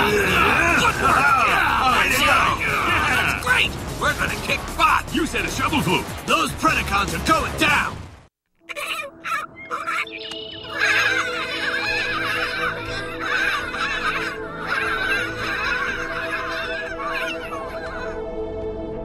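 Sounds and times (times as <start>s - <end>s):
penguins calling: 8.7s - 18.2s
music drone: 9.5s - 19.0s.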